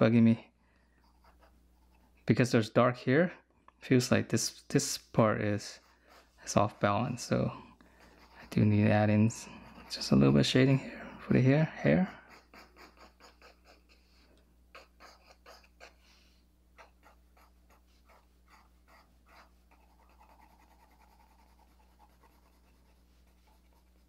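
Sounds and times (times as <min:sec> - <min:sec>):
pencil scratching on paper: 0:01.0 - 0:02.1, 0:05.6 - 0:10.7, 0:11.8 - 0:13.9, 0:16.8 - 0:24.0.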